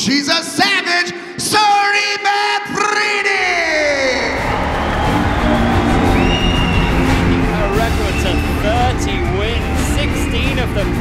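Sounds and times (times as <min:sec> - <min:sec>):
loud music with low beat: 0:04.3 - 0:11.0.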